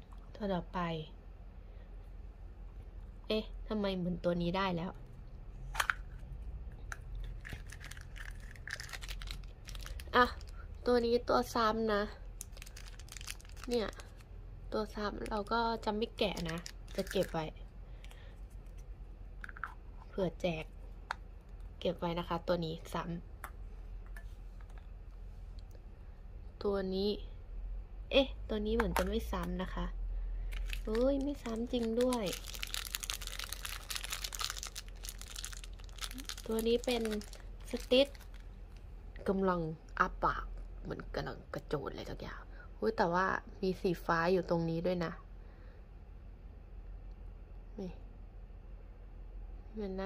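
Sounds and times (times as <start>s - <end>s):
plastic bag crinkling: 7.2s - 10.8s, 12.3s - 14.3s, 15.1s - 17.5s, 30.5s - 38.5s.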